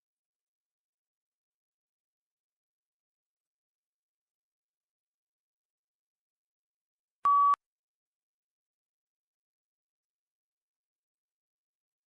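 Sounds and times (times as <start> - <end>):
short electronic beep: 7.3 - 7.6.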